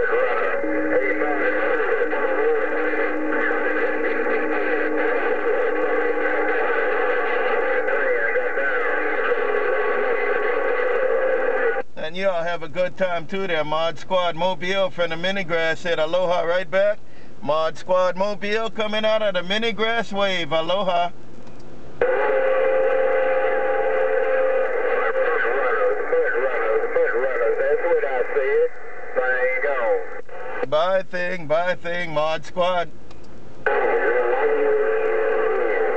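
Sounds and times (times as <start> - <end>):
radio static noise: 0.0 - 21.2, 21.8 - 35.9
whining radio tones: 0.0 - 21.2, 21.8 - 35.9.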